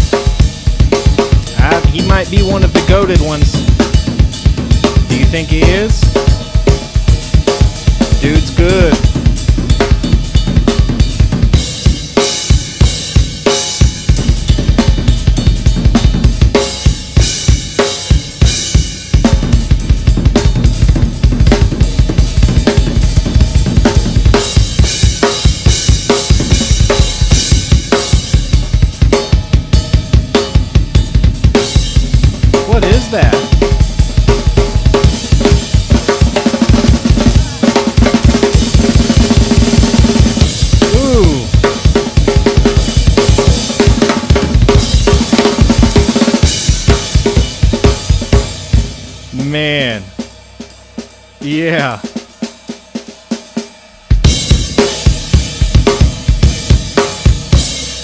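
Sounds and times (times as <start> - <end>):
drum solo: 0.0 - 58.0.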